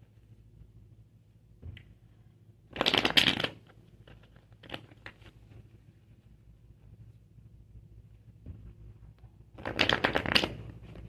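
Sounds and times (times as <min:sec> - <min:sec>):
cards being shuffled: 0:09.6 - 0:11.0.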